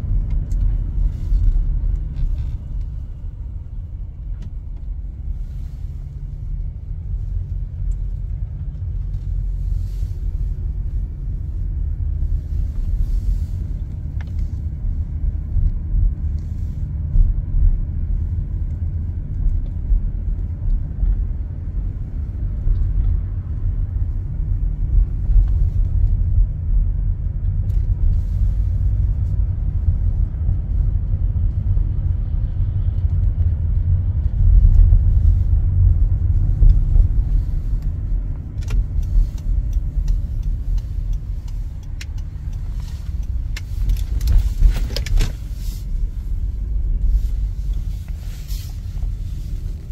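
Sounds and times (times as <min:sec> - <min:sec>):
car engine and road noise: 0:00.0 - 0:49.9
light clicks and taps: 0:36.5 - 0:45.4.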